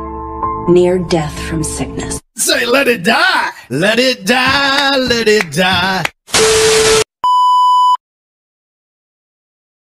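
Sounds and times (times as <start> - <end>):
steady test-tone beep: 6.4 - 8.0.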